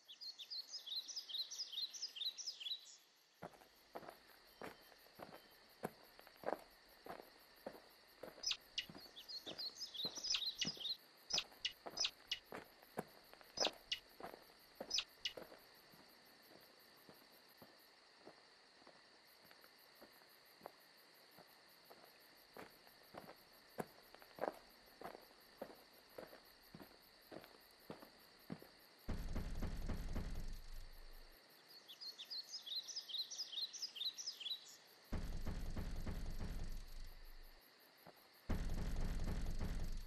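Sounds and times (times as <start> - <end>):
birds twittering: 0.0 - 3.1, 4.0 - 6.6, 8.2 - 15.6, 29.1 - 37.5
insects chirping: 0.0 - 40.0
footsteps on grass: 3.4 - 20.7, 35.1 - 37.5.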